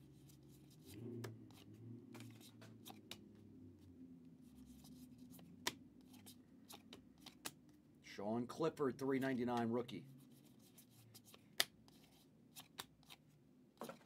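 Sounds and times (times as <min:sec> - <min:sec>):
trading cards sliding and snapping: 0:00.2 - 0:03.3, 0:04.6 - 0:07.6, 0:10.3 - 0:13.2.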